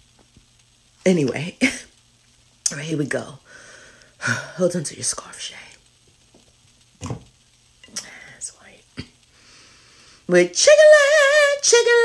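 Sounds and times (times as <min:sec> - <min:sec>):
whispered breathy vocals: 0:07.9 - 0:08.9.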